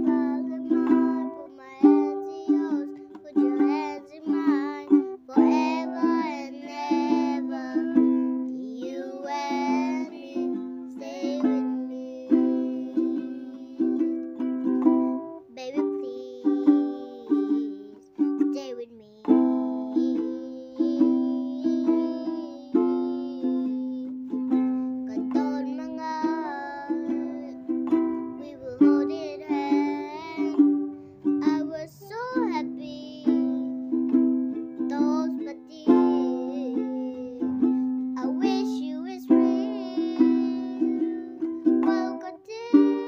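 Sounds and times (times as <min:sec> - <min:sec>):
girl singing: 0:00.0 - 0:43.0
strummed ukulele: 0:00.0 - 0:43.0.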